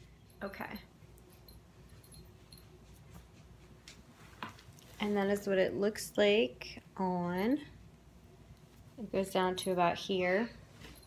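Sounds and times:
metal ball chain clinking: 0:00.0 - 0:03.1.

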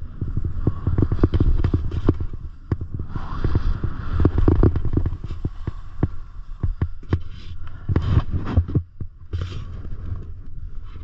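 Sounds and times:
low rumble: 0:00.0 - 0:11.0
skis scraping on snow: 0:00.1 - 0:10.0.

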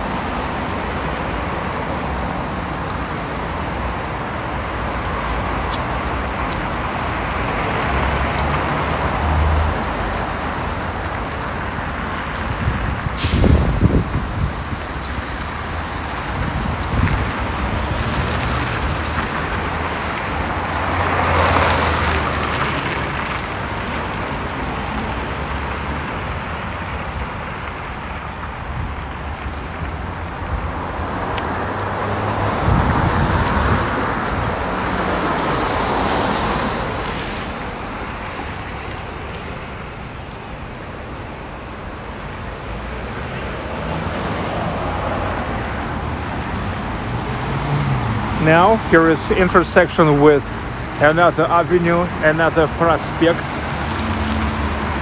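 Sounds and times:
cars passing: 0:00.0 - 0:55.0.

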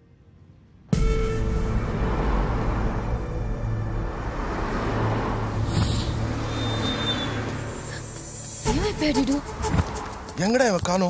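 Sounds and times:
city street traffic rumble: 0:00.1 - 0:11.0
vehicle passing: 0:01.2 - 0:10.4.

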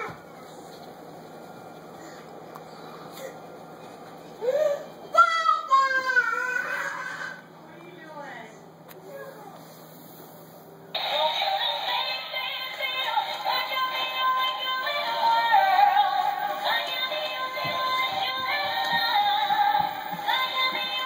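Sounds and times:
tinny toy tune with synthetic singing: 0:11.0 - 0:21.0.

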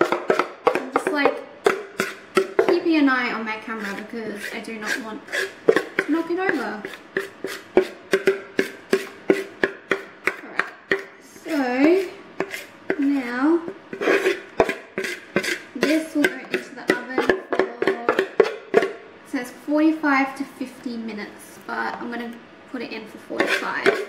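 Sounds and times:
spoon scraping mixing bowl: 0:00.0 - 0:19.0, 0:23.1 - 0:24.0.

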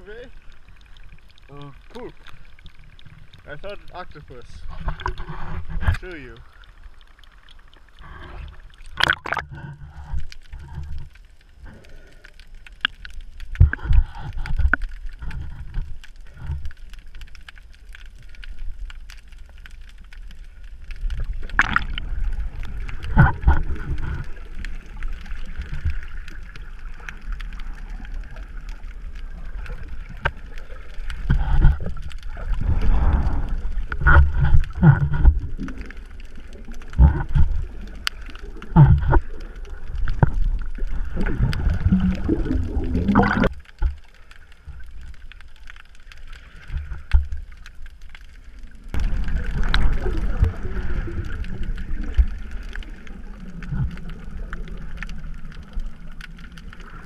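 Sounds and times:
muffled underwater water movement: 0:00.0 - 0:57.0
breathing through a snorkel: 0:07.9 - 0:08.8, 0:11.6 - 0:12.5, 0:32.5 - 0:33.8
camera splashing into water: 0:09.0 - 0:09.5, 0:21.6 - 0:22.0
low underwater thumps: 0:41.3 - 0:44.0.

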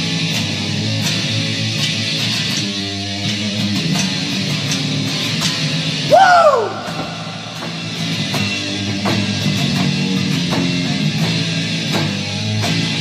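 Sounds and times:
rock band playing: 0:00.0 - 0:13.0
vocal whoop: 0:06.1 - 0:07.9
drum hits: 0:06.1 - 0:09.3.

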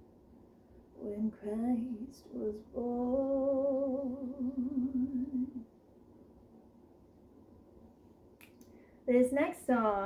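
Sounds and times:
woman singing: 0:01.0 - 0:05.7.

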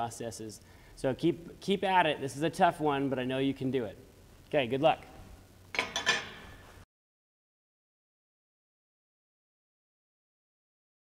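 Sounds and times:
metallic clinking: 0:05.7 - 0:06.7.

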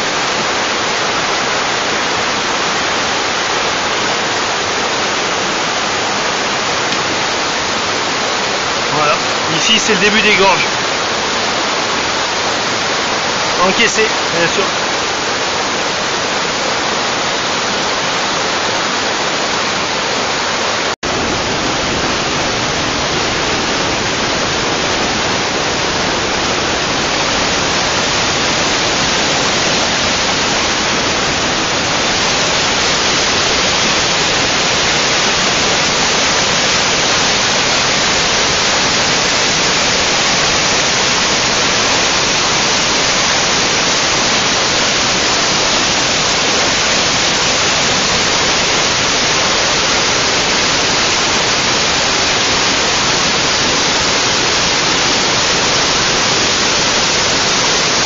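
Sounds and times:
stream rushing over rapids: 0:00.0 - 0:58.0.

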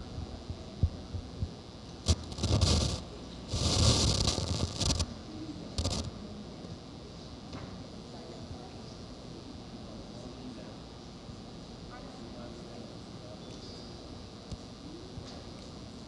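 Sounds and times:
microphone rustling and scraping: 0:02.0 - 0:05.1, 0:05.8 - 0:06.1.

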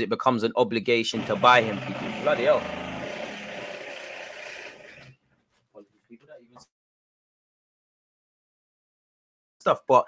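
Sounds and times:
construction drill whirring: 0:01.1 - 0:05.2.

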